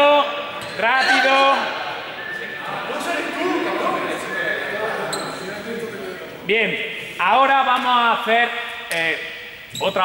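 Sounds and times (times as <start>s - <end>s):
young people talking and calling: 0.0s - 8.9s.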